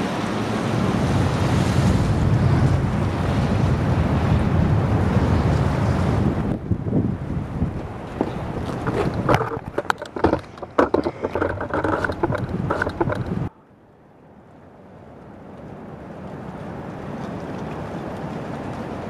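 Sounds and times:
storm wind buffeting microphone: 0.0 - 13.5
sharp knocks and rattles: 8.2 - 13.5.

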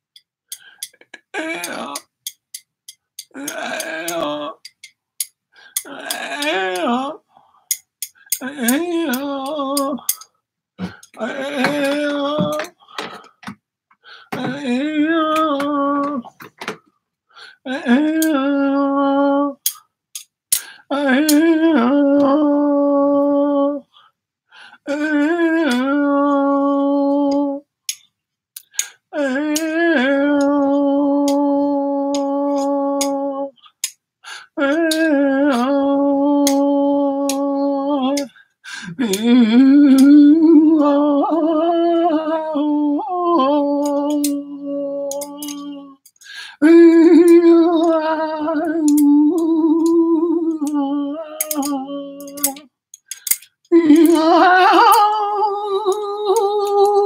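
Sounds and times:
man humming and singing tones: 0.8 - 2.4, 3.2 - 4.9, 5.6 - 7.3, 8.1 - 13.5, 14.1 - 16.7, 17.4 - 19.8, 20.6 - 24.0, 24.8 - 27.7, 28.6 - 57.0.

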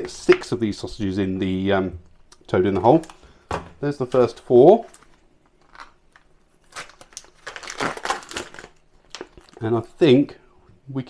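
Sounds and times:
plastic packaging crinkling: 4.0 - 9.8.

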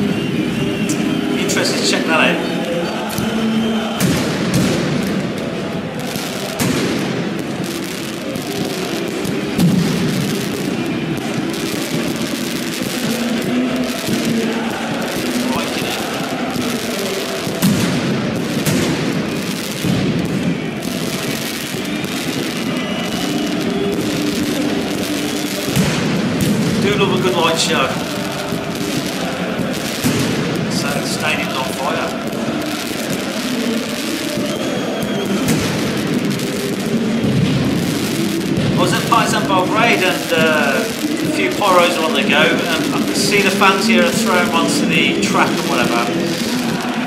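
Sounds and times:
crowd chanting: 0.0 - 47.0
firecracker bangs: 0.0 - 47.0.

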